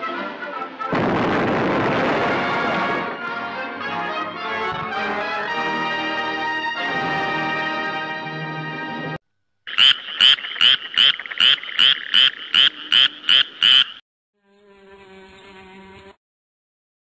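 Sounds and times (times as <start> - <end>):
raspy frog-like croaks: 9.6 - 14.0.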